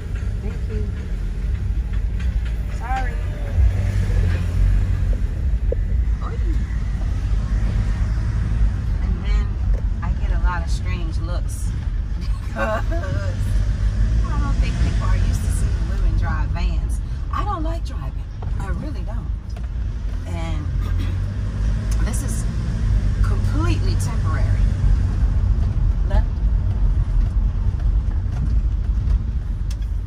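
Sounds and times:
voices: 0.0s - 7.7s, 8.9s - 13.6s, 14.2s - 19.5s, 23.2s - 24.8s
engine and road rumble: 0.0s - 30.0s.

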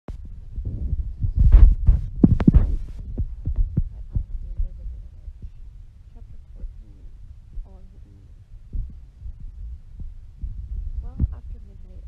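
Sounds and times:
deep heavy booms and thuds: 0.1s - 12.0s.

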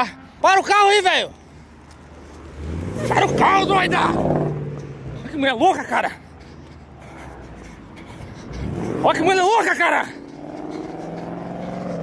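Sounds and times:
car engine droning: 1.4s - 12.0s.

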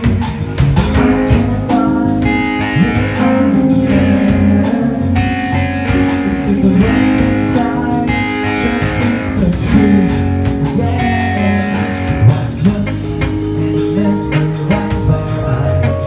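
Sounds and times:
bass guitar: 0.0s - 16.0s
drums: 0.0s - 16.0s
electric guitar chords: 0.0s - 16.0s.

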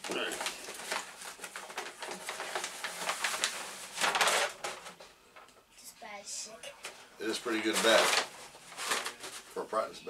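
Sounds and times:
cardboard tube ripping and crinkling: 0.0s - 5.0s, 7.5s - 9.6s.

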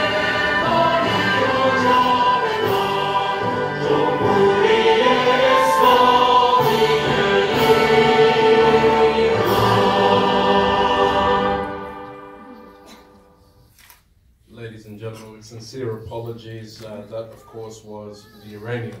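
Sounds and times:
choir singing anthem over loudspeakers: 0.0s - 12.7s.

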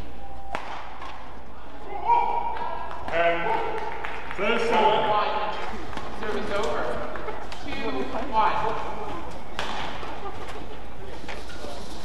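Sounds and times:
arena crowd noise: 0.0s - 12.0s
racket hitting shuttlecock: 0.5s - 1.3s, 9.5s - 10.2s.

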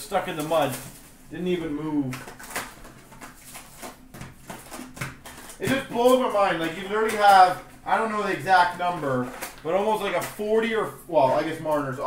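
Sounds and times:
cardboard and wrappers rustling: 0.0s - 12.0s.

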